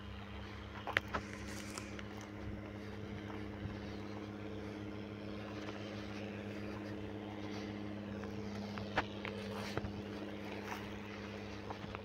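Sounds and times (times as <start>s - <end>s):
tractor diesel engine running: 0.0s - 12.0s.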